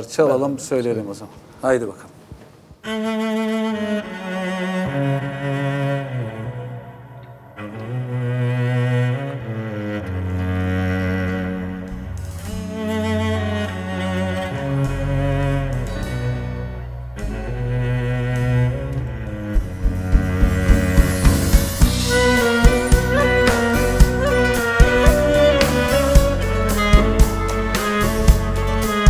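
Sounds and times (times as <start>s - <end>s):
cello bowed melody: 2.8s - 29.0s
low bass notes: 6.8s - 29.0s.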